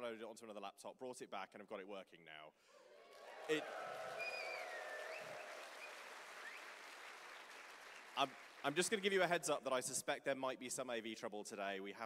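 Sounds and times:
audience applauding: 3.0 - 9.3.

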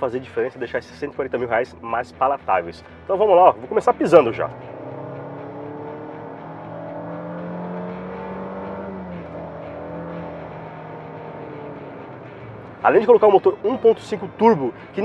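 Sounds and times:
car engine at full throttle: 3.5 - 13.1.

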